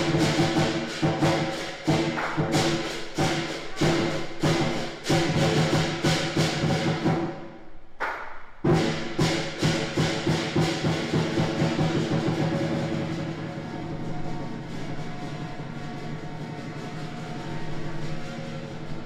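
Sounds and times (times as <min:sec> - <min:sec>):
big drum beating: 0:00.0 - 0:07.6, 0:08.6 - 0:19.0
cymbals clashing: 0:00.0 - 0:19.0.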